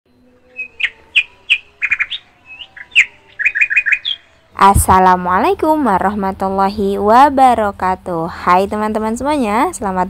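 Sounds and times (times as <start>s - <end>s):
small bird chirping: 0.4s - 4.5s.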